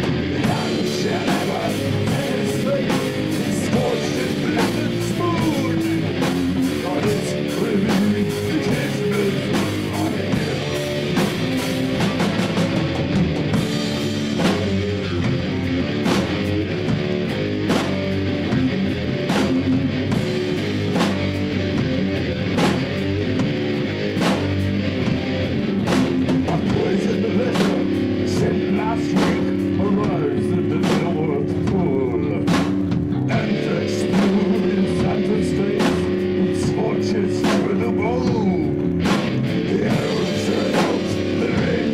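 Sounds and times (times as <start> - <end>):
drum kit hits: 0.0 - 41.9
electric bass: 0.0 - 41.9
electric guitar chords: 0.0 - 41.9.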